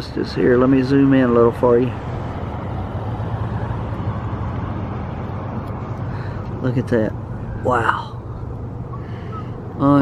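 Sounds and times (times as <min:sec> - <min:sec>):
steady outdoor rumble: 0:00.0 - 0:10.0.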